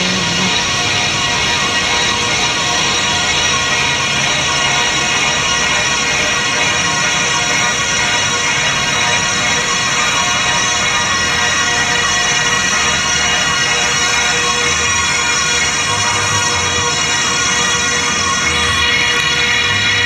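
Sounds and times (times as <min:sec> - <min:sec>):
house dance music: 0:00.0 - 0:00.6.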